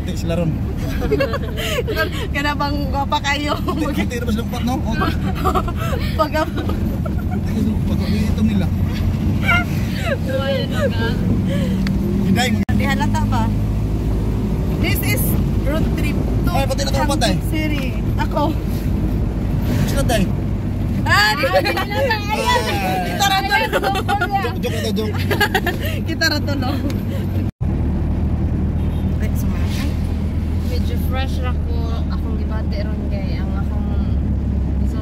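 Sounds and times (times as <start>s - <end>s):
people talking: 0.0s - 6.8s, 9.4s - 11.6s, 12.3s - 13.5s, 21.0s - 26.9s, 30.7s - 34.2s, 34.8s - 35.0s
vehicle engine and road rumble: 0.0s - 35.0s.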